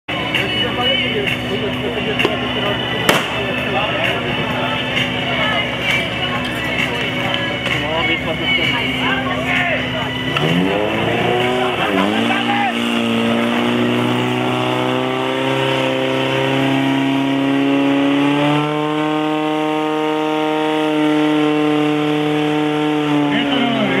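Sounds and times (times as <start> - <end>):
pump engine revving: 1.1 - 24.0.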